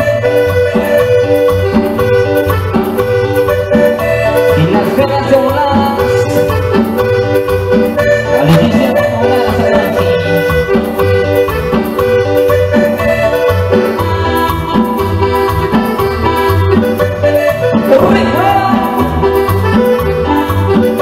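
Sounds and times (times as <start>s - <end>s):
congas: 0.0s - 21.0s
guitar: 0.0s - 21.0s
sustained melodic lead line: 0.0s - 21.0s
pulsing bass beat: 14.1s - 20.8s.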